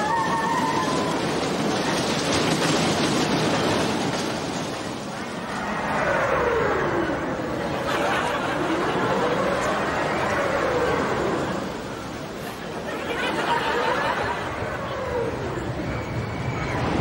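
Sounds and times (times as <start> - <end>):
crowd noise: 0.0 - 17.0
ride rumbling on track: 0.0 - 17.0
long falling tone: 5.2 - 17.0.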